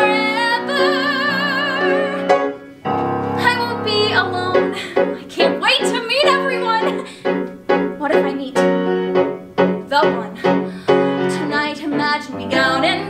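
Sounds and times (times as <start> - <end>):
woman singing: 0.0 - 2.4, 3.4 - 7.1, 9.9 - 10.6, 11.2 - 13.0
piano chords: 0.0 - 13.0.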